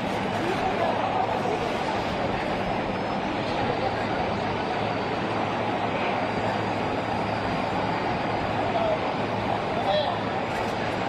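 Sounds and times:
constant low hum: 0.0 - 11.0
street traffic: 0.0 - 11.0.

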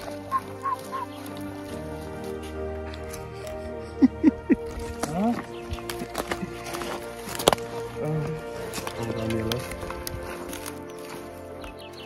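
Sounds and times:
bird chirping: 0.0 - 1.8, 7.7 - 12.0
background music: 0.0 - 12.0.

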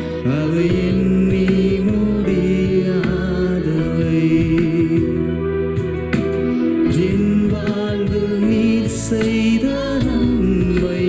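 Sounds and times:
electric bass: 0.0 - 11.0
electronic keyboard: 0.0 - 11.0.

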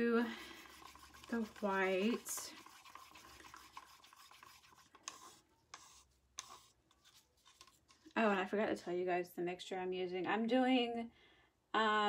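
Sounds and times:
stir stick scraping plastic cup: 0.0 - 8.2.

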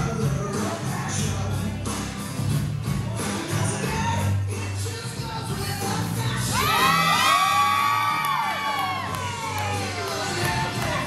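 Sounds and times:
music with bass: 0.0 - 11.0.

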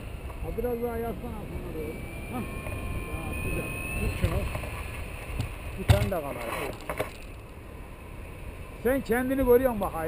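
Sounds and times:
wind rushing over microphone: 0.0 - 6.4
low steady rumble: 0.0 - 10.0.

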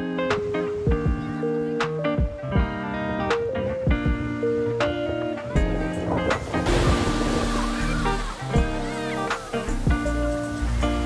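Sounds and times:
acoustic guitar music: 0.0 - 11.0
sea surf breaking on beach: 4.4 - 11.0.

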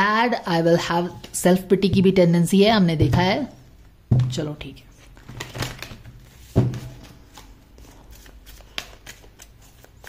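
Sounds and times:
cards shuffled and flicked: 5.3 - 10.0.

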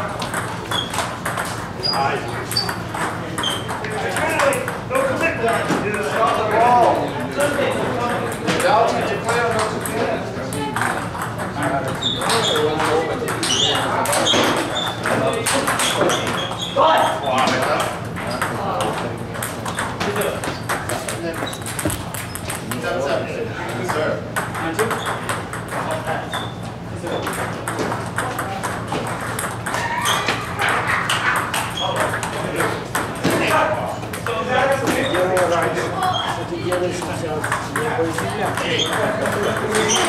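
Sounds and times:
table tennis balls ticking: 0.1 - 6.4, 27.2 - 33.2, 34.1 - 40.0
people talking: 1.8 - 19.4, 31.8 - 40.0.

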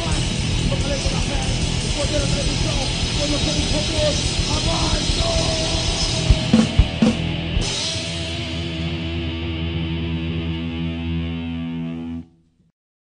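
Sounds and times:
drum and cymbal hits: 0.0 - 8.8
distorted electric guitar chord ringing: 4.2 - 12.2.

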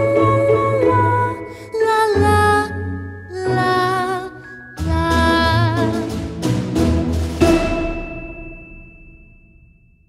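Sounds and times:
christmas music chord: 2.2 - 9.4
bright bell-like ringing: 7.4 - 10.0.

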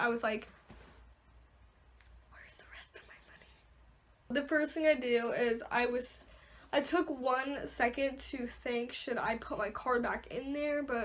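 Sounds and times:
woman whispering: 2.3 - 3.7.

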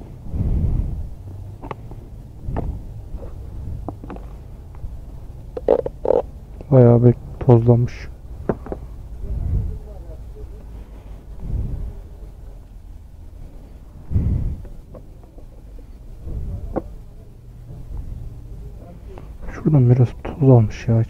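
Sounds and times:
wind gusts on microphone: 0.0 - 5.4, 7.1 - 10.1, 11.2 - 12.3, 14.0 - 14.9, 16.1 - 16.9.

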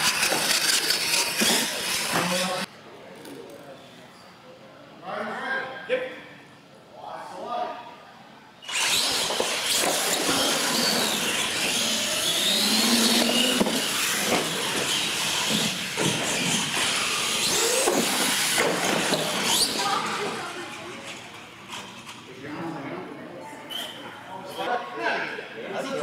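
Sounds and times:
toy truck motor whine: 0.0 - 2.7, 8.6 - 22.2.

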